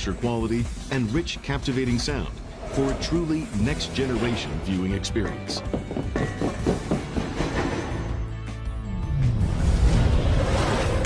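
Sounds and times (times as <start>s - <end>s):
metallic knocks from train cars: 5.3s - 8.2s.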